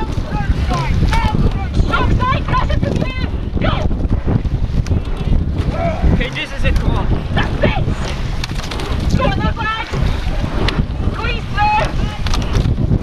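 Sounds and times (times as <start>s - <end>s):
voices: 0.0s - 4.1s, 4.9s - 12.5s
water rushing past hull: 0.0s - 13.0s
wind buffeting microphone: 0.0s - 13.0s.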